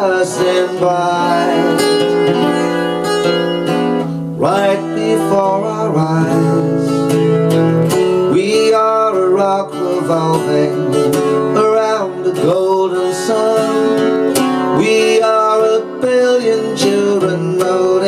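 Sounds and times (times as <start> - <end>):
man singing long notes: 0.0 - 2.9, 4.3 - 7.3, 8.2 - 18.0
acoustic guitar: 0.0 - 18.0.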